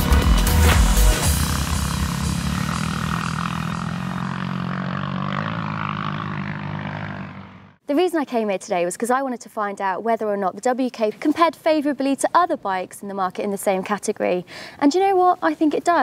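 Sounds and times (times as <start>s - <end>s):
heavy beat: 0.0s - 3.7s
held music chord: 0.0s - 4.3s.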